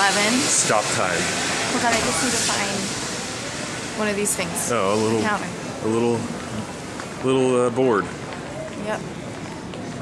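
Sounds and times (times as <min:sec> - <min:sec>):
airport terminal background noise: 0:00.0 - 0:10.0.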